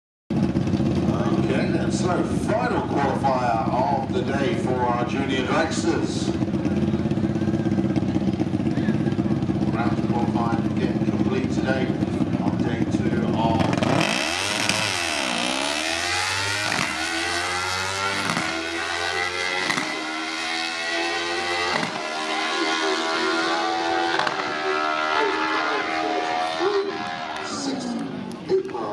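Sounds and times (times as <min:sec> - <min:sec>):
dragster engine revving: 0:00.4 - 0:28.2.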